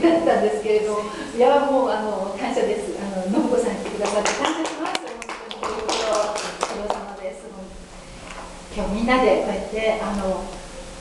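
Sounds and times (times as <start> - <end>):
woman speaking into microphone: 0.0 - 7.8, 8.7 - 10.6.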